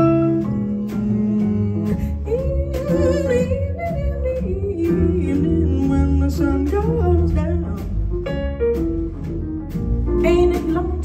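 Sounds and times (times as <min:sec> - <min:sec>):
woman singing: 0:00.0 - 0:08.0, 0:10.2 - 0:11.0
drums: 0:00.0 - 0:11.0
piano: 0:00.0 - 0:11.0
upright bass: 0:00.0 - 0:11.0.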